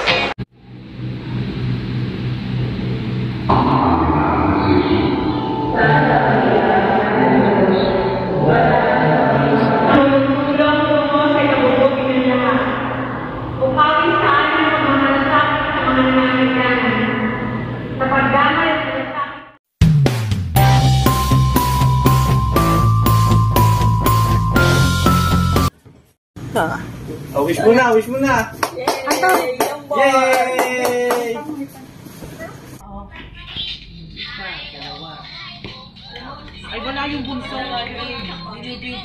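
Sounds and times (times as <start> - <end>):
person singing in echoing church: 3.5 - 13.7
music: 4.6 - 9.6, 19.8 - 25.7.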